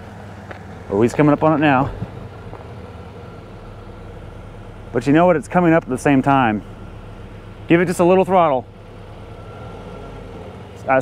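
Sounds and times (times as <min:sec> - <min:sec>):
car engine running steadily: 0:00.0 - 0:11.0.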